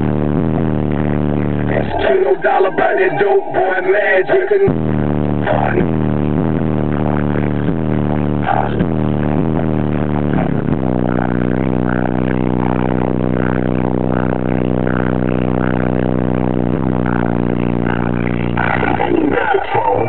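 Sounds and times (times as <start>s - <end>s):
loud bass-heavy music in car: 0.0s - 20.0s
voice over music: 1.7s - 4.8s, 17.1s - 20.0s.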